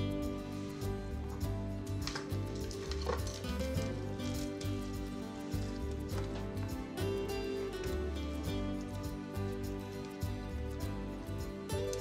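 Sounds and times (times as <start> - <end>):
background music: 0.0 - 12.0
celery sticks rustling and clicking: 1.3 - 6.7, 11.7 - 12.0.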